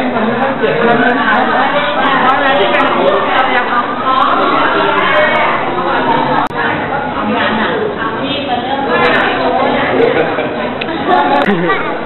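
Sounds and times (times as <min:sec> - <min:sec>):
murmur of overlapping voices: 0:00.0 - 0:12.0.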